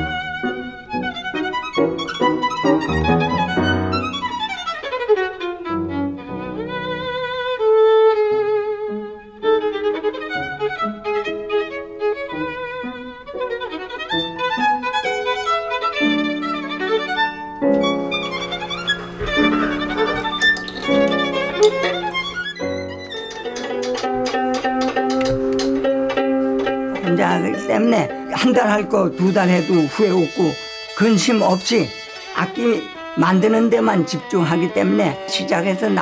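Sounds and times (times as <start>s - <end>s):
violin melody: 0.0s - 36.0s.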